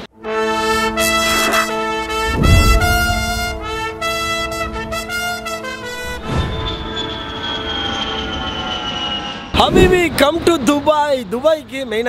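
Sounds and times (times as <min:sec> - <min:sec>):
jet airliner flyby: 0:00.7 - 0:11.9.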